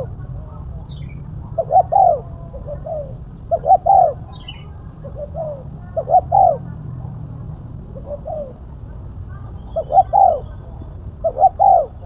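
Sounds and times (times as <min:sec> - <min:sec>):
dove cooing: 0:00.0 - 0:00.4, 0:01.0 - 0:07.0, 0:07.8 - 0:08.7, 0:09.6 - 0:12.0.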